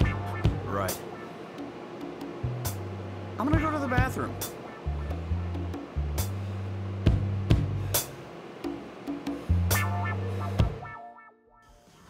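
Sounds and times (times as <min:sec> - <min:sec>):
sustained bass line: 0:00.0 - 0:01.0, 0:02.4 - 0:08.0, 0:09.5 - 0:11.0
sharp drum hits: 0:00.0 - 0:02.8.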